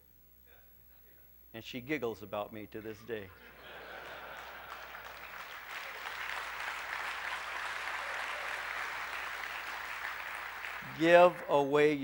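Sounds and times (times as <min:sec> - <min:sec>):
audience applauding: 0:03.9 - 0:11.7.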